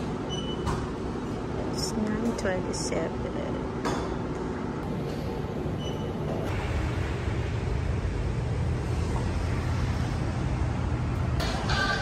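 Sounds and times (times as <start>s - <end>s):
road traffic rumble: 6.5s - 12.0s.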